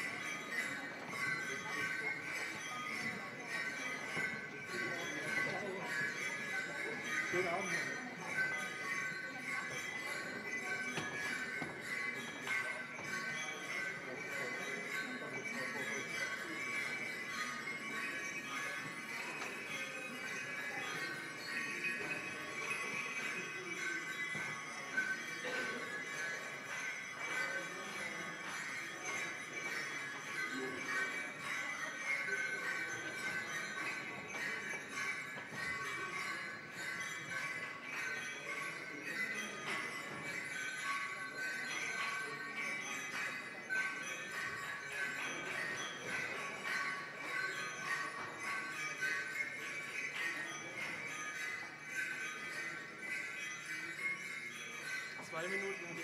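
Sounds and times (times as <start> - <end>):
metallic ringing percussion: 0.0 - 56.0
soft percussion strikes: 0.3 - 56.0.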